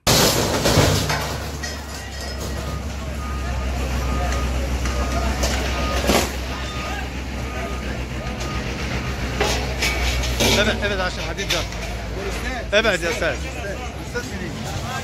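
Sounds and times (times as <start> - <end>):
structure clattering: 0.0 - 3.4, 8.2 - 14.4
loader engine running: 0.0 - 15.0
faint repeated beep: 2.2 - 9.4.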